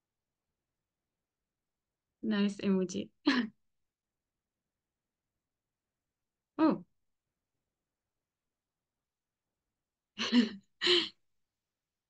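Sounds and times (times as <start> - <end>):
woman laughing: 10.2 - 11.1.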